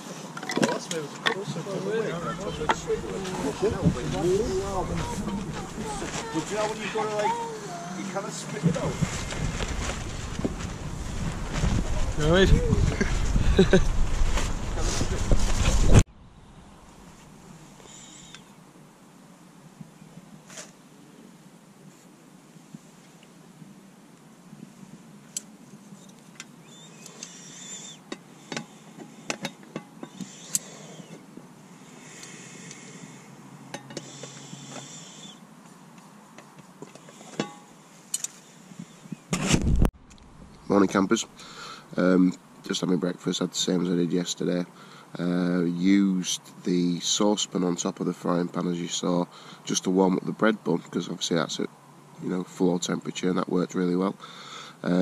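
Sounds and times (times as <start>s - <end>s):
soft hiss: 0.0s - 53.2s.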